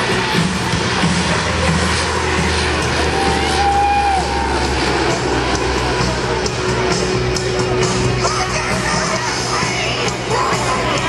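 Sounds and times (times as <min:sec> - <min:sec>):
crowd noise: 0:00.0 - 0:11.0
music: 0:00.0 - 0:11.0
propeller aircraft drone: 0:04.2 - 0:08.2.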